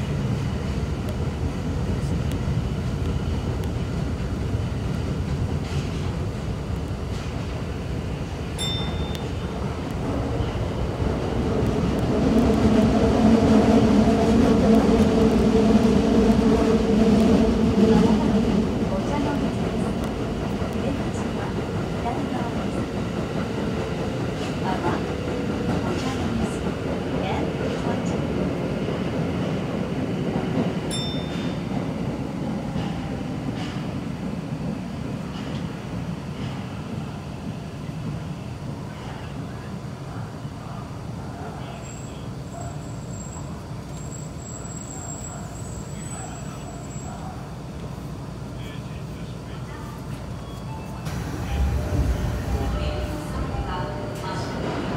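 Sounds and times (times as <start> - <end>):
subway train wheels rumbling: 0.0 - 54.9.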